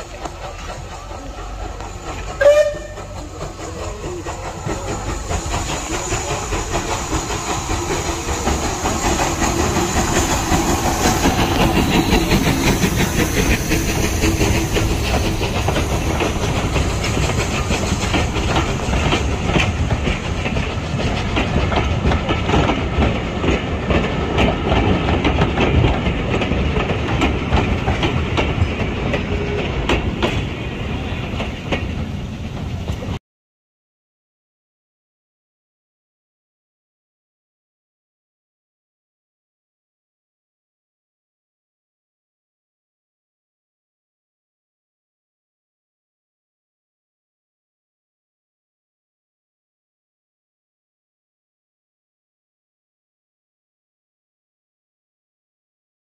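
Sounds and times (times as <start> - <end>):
steam locomotive rumble: 0.0 - 33.2
train wheels clattering over rail joints: 0.0 - 33.2
steam train whistle: 2.4 - 3.2.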